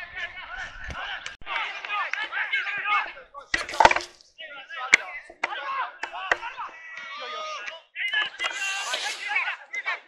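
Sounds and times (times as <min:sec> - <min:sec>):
players calling out: 0:04.8 - 0:09.8.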